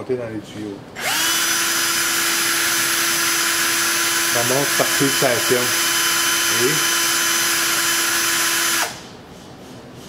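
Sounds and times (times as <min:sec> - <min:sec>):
electric drill whining: 0:01.0 - 0:09.0.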